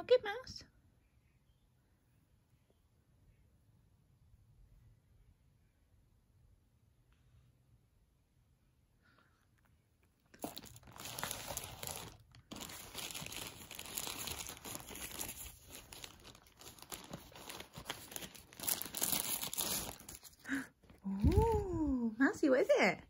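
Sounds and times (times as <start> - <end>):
plastic bag tearing and crinkling: 10.3 - 20.5.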